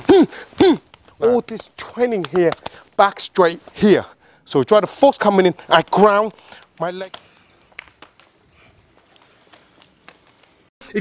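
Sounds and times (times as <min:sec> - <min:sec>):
soft slaps of forearms: 0:00.9 - 0:02.8
man speaking: 0:01.2 - 0:07.2.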